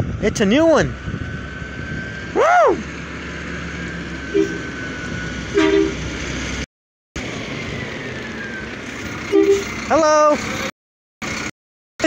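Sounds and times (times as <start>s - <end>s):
truck engine running: 0.0s - 11.5s
short horn toots: 4.3s - 4.7s, 5.5s - 6.1s, 9.3s - 9.8s.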